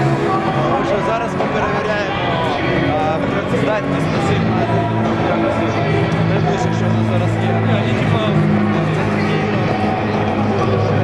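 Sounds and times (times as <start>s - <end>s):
passers-by talking: 0.0s - 11.0s.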